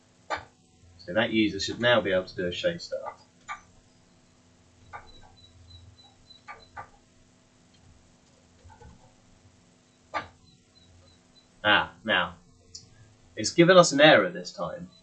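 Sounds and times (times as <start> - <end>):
low steady hum: 0.0 - 15.0
person talking: 1.0 - 3.1, 11.6 - 14.9.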